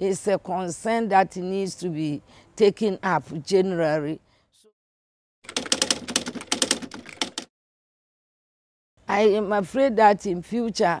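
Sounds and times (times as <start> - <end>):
typewriter key clacks: 5.5 - 7.5.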